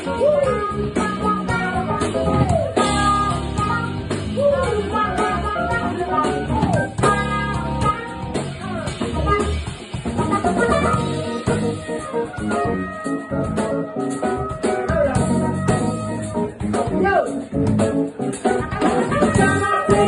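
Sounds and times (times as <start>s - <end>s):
bending melodic line: 0.0s - 17.0s
drum kit: 0.0s - 20.0s
electric bass guitar: 0.0s - 20.0s
keyboard: 0.0s - 20.0s.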